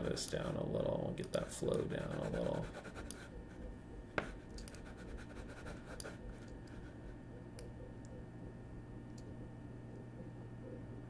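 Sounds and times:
low steady hum: 0.0 - 11.0
computer mouse scratching and clicking: 1.2 - 7.0.

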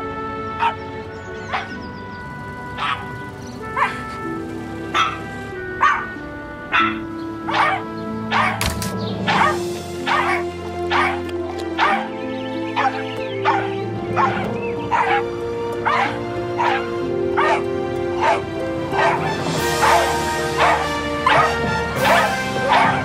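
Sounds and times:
music rising in pitch: 0.0 - 23.0
puppies barking: 0.5 - 23.0.

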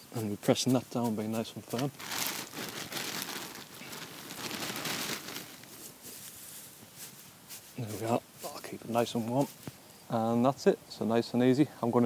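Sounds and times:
dry straw rustling and crackling: 0.2 - 9.8.

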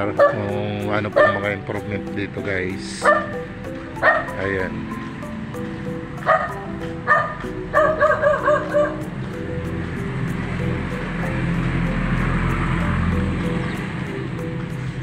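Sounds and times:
background music: 0.0 - 15.0
dog barking and yipping: 0.1 - 0.5, 1.1 - 1.6, 3.0 - 4.5, 6.2 - 9.2.

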